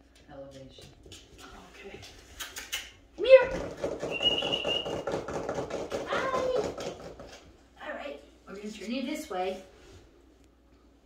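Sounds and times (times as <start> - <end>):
dog claws clicking on floor: 0.1 - 7.5.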